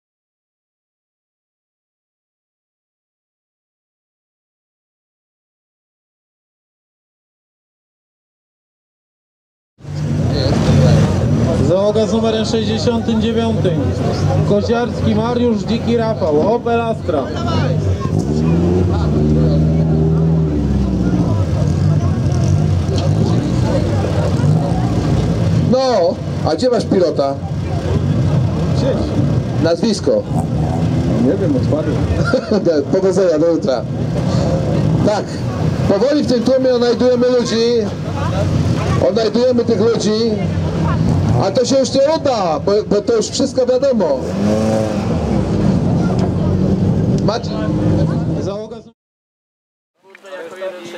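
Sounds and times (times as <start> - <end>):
rally car engine revving: 9.8 - 48.9.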